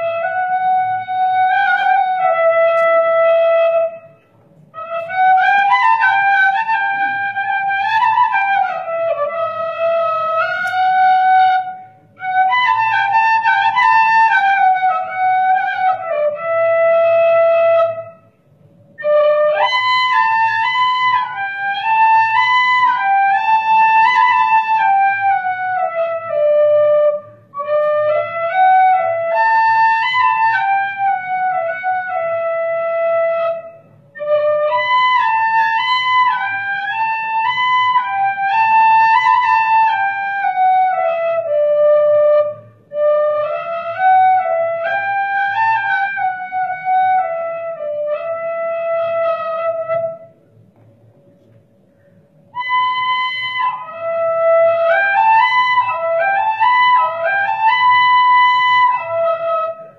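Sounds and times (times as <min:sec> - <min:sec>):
solo flute melody: 0:00.0 - 0:50.6, 0:52.4 - 0:59.9.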